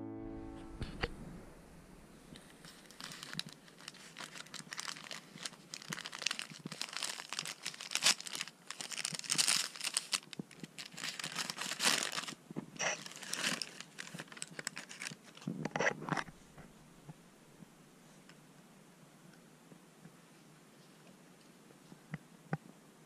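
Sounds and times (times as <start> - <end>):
gift wrap paper crinkling: 2.3 - 16.7.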